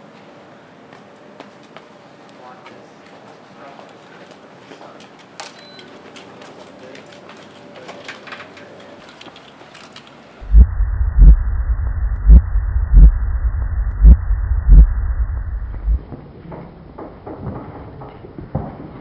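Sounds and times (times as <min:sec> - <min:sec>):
faint outdoor ambience: 0:00.0 - 0:19.0
muffled heartbeat thumps: 0:10.4 - 0:16.0
low rumble: 0:10.4 - 0:16.2.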